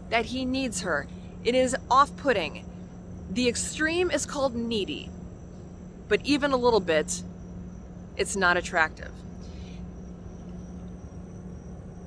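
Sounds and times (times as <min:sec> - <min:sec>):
crickets chirring: 0:00.0 - 0:12.0
low steady hum: 0:00.0 - 0:12.0.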